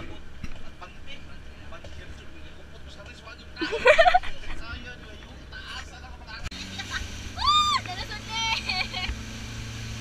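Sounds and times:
girl laughing: 3.6s - 4.4s, 7.4s - 9.1s
outboard engine running: 4.7s - 10.0s.

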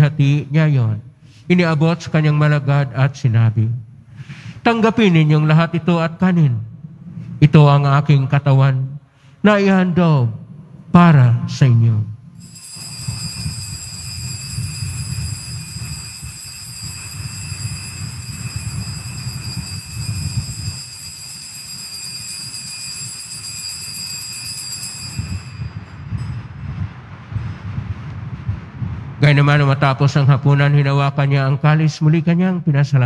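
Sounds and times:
altar bells ringing: 12.4s - 26.6s.

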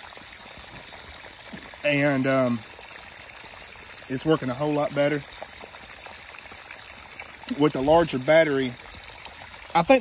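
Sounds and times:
water splashing and trickling: 0.0s - 10.0s.

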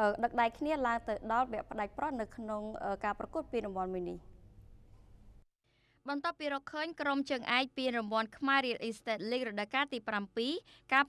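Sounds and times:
woman speaking: 0.0s - 4.3s, 6.1s - 11.0s.

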